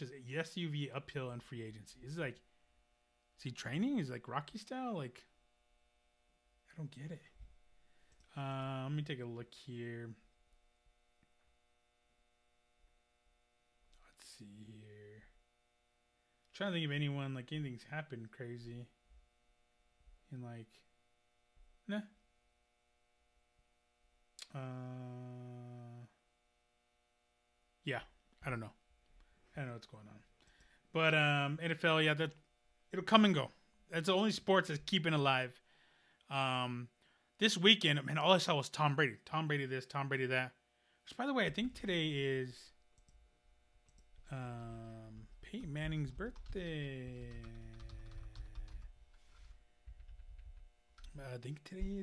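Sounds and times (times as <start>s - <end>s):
faint electrical hum: 0.0s - 52.0s
man humming: 24.4s - 26.2s, 44.3s - 48.9s
spoken word: 24.4s - 26.2s.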